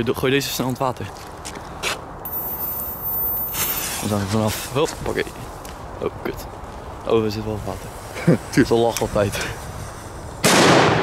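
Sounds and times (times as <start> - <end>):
jacket rustling against microphone: 2.3 - 4.8
short hiss: 3.3 - 4.7.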